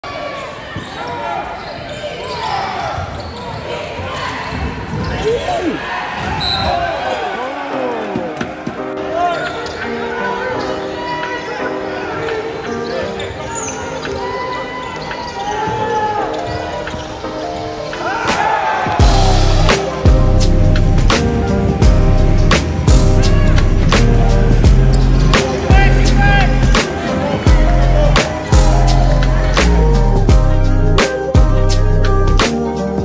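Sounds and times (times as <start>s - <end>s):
crowd chatter: 0.0s - 33.0s
sneakers squeaking on hardwood: 0.4s - 7.0s, 8.0s - 19.1s
music: 6.2s - 33.0s.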